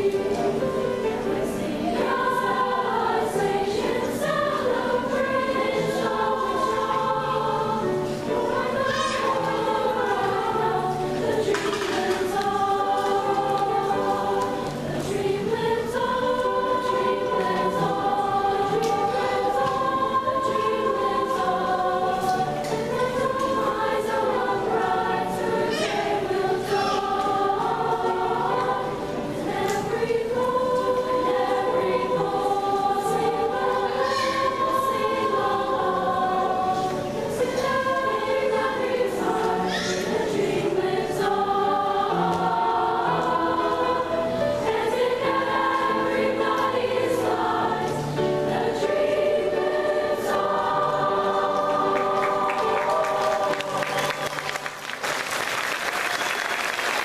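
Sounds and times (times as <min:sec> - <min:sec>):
girls' chorus singing: 0:00.0 - 0:57.0
piano accompaniment: 0:00.0 - 0:57.0.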